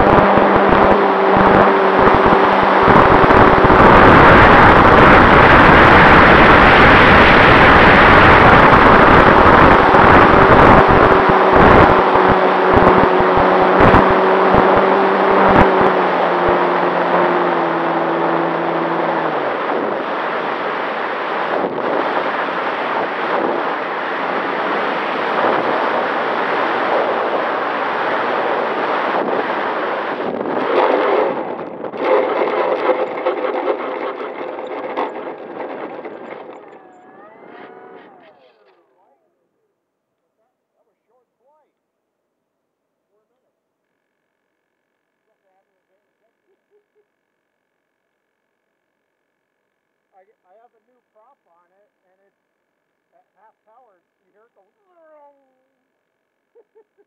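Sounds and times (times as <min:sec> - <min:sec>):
airflow rushing over camera: 0:00.0 - 0:38.8
model plane motor and propeller: 0:30.6 - 0:38.8.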